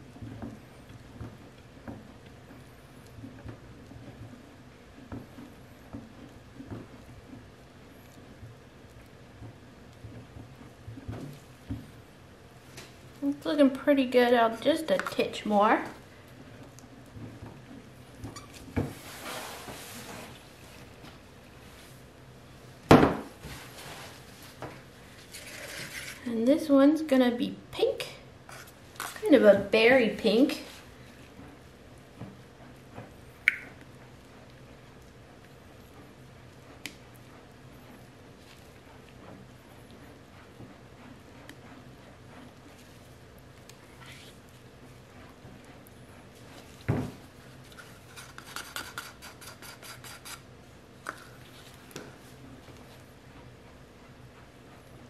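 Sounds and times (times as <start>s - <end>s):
spatula scraping bucket: 17.6s - 20.9s, 23.4s - 26.3s, 46.4s - 50.5s.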